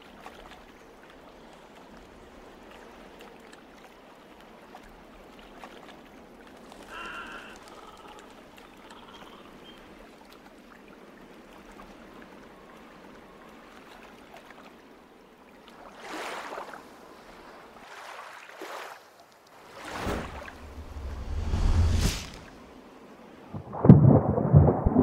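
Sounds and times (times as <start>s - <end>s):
water lapping around boat: 0.0s - 21.2s
rushing swells of water: 0.0s - 25.0s.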